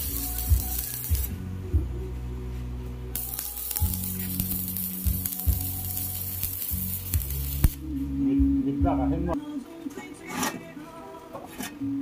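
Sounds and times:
welding arc crackling: 0:00.0 - 0:01.4, 0:03.2 - 0:07.9.

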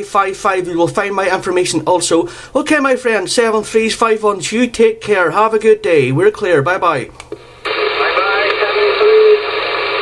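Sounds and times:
radio band hiss: 0:07.3 - 0:10.0
faint garbled radio voice: 0:07.7 - 0:09.8.

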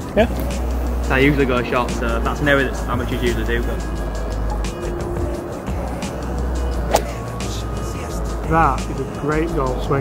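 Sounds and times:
background music: 0:00.0 - 0:10.0
golf club striking ball: 0:06.8 - 0:07.4.

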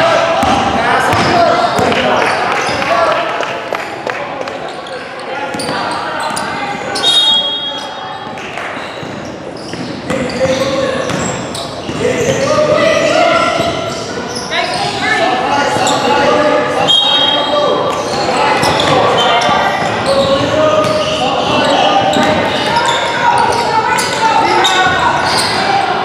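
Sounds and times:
voices talking and calling out: 0:00.0 - 0:26.0.

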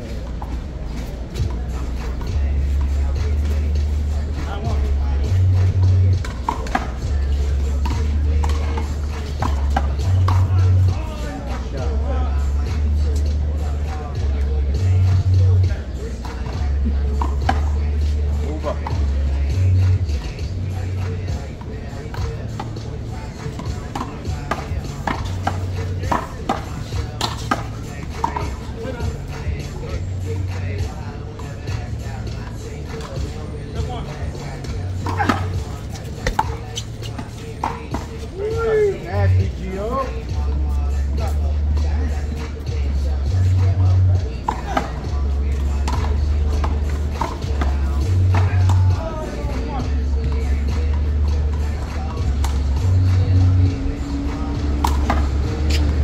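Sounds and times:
ball hitting wall and concrete: 0:04.6 - 0:11.0, 0:16.2 - 0:17.7, 0:19.8 - 0:29.7, 0:30.4 - 0:38.2, 0:44.4 - 0:50.9, 0:54.2 - 0:56.0.

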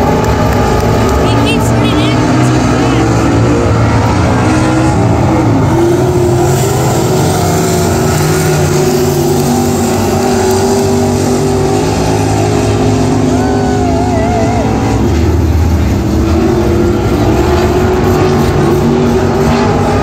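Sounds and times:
racing car engines: 0:00.0 - 0:20.0.

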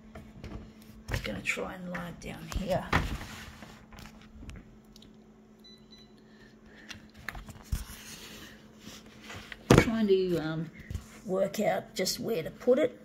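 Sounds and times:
faint steady hum: 0:00.0 - 0:13.0
paper rustling: 0:02.6 - 0:04.5.

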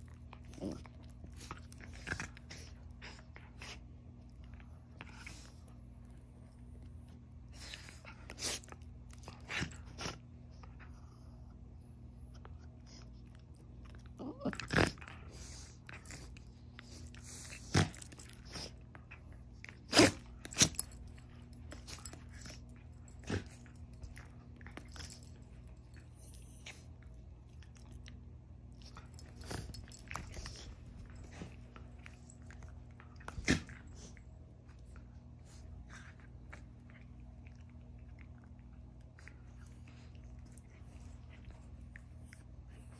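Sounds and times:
dogs play-fighting noises: 0:00.0 - 0:27.6, 0:28.7 - 0:42.9
steady low hum: 0:00.0 - 0:42.9.

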